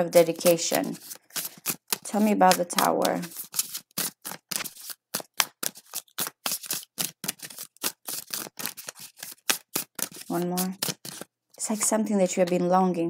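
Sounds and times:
cards being shuffled: 0.0s - 12.6s.

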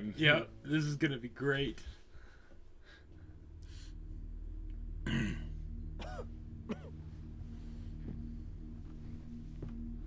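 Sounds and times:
low steady drone: 0.0s - 10.0s
man clearing his throat: 5.1s - 7.0s.

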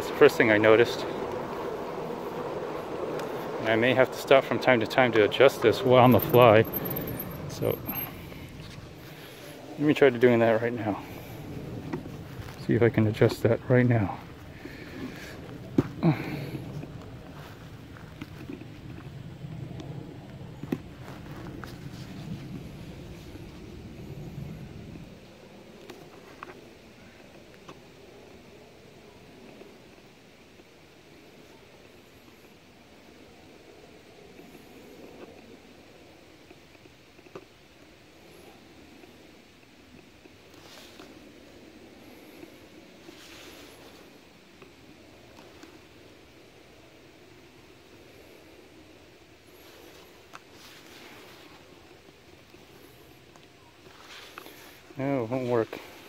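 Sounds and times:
low rumble: 0.0s - 25.8s
bike rolling on asphalt: 0.0s - 56.0s.

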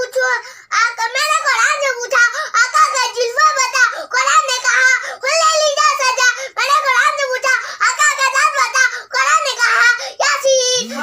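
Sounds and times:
boy singing: 9.2s - 11.0s.

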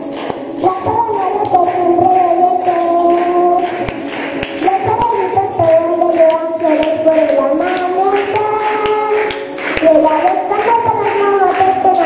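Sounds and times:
shaken percussion: 0.0s - 12.0s
small guitar: 0.0s - 12.0s.

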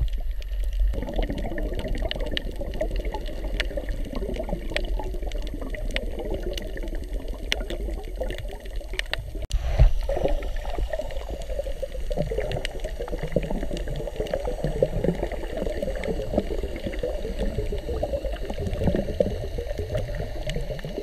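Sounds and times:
underwater churning and bubbling: 0.0s - 21.0s.

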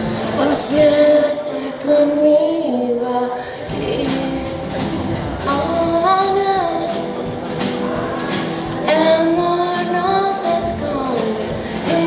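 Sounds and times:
woman singing: 0.0s - 7.2s, 8.2s - 12.0s
strummed acoustic guitar: 0.0s - 12.0s.

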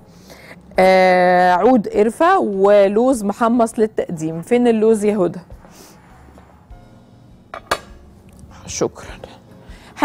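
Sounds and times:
dish clinking on countertop: 7.5s - 8.0s.

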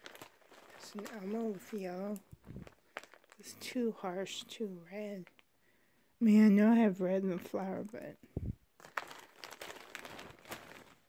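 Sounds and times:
plastic bag crinkling: 0.0s - 5.5s, 8.8s - 11.0s.

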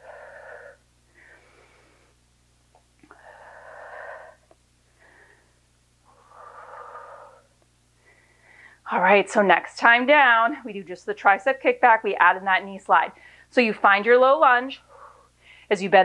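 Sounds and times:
woman breathing hard: 0.0s - 2.2s, 3.0s - 8.9s, 14.8s - 15.7s.

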